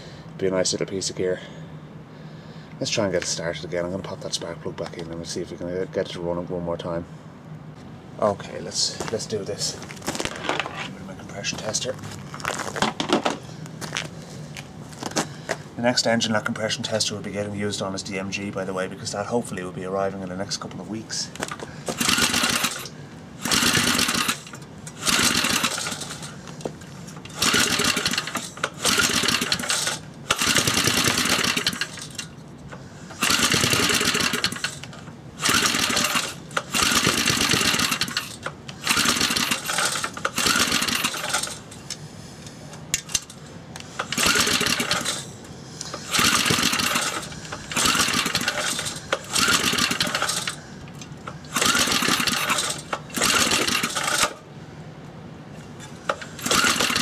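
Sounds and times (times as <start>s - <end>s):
engine recoil starter pulls: 21.4s - 41.7s, 42.8s - 54.4s, 55.7s - 57.0s.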